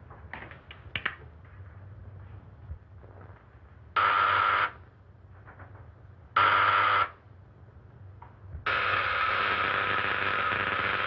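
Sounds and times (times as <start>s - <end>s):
electric buzzer: 4.0s - 4.8s, 6.4s - 7.2s, 8.7s - 11.0s.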